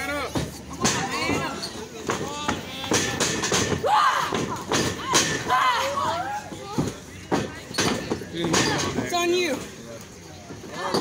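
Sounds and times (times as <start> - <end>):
spectators shouting: 3.7 - 6.5.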